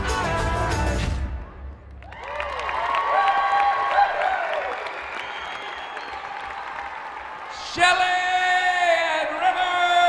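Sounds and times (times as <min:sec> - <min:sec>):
audience applauding and cheering: 0:01.6 - 0:10.0.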